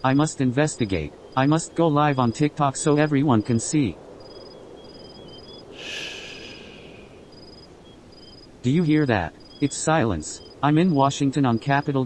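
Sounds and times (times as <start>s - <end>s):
crickets chirping: 0.0s - 12.0s
breathy hiss: 5.7s - 7.3s.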